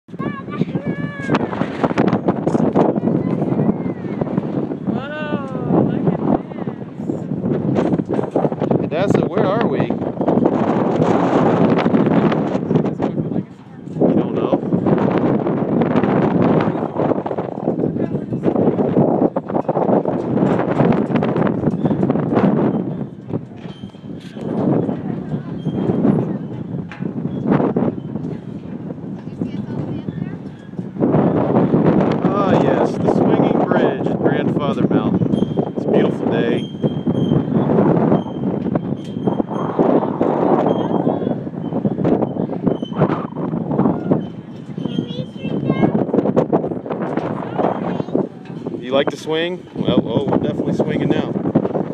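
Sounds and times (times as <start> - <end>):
strong wind buffeting microphone: 0.0 - 51.9.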